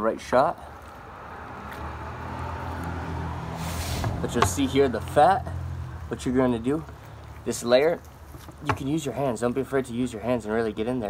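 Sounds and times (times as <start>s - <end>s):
vehicle engine hum: 0.5s - 11.0s
brief rushing hiss: 3.5s - 4.2s.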